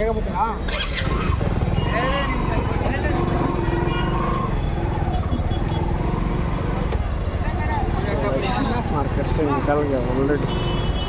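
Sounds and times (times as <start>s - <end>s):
motorcycle engine running: 0.7s - 6.9s.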